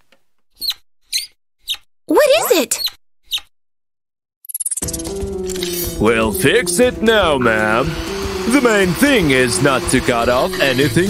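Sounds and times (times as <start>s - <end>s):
high-pitched cartoon squeaks: 0.6s - 3.5s.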